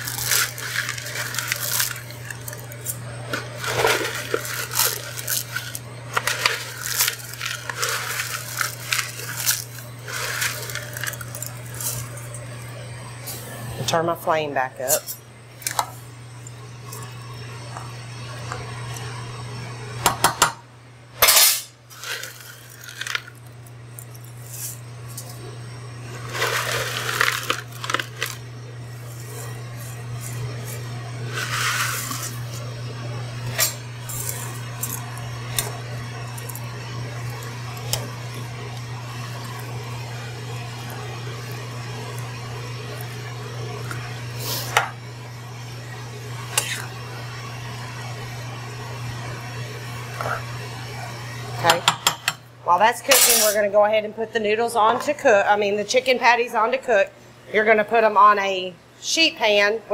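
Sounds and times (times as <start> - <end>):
steady low hum: 0.0 - 59.9
utensil scraping metal saucepan: 31.3 - 32.4.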